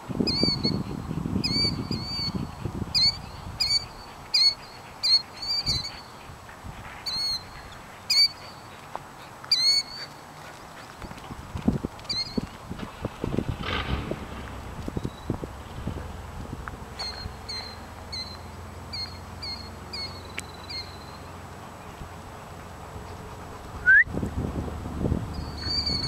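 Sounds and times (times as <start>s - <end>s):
low rumble: 12.8s - 18.8s.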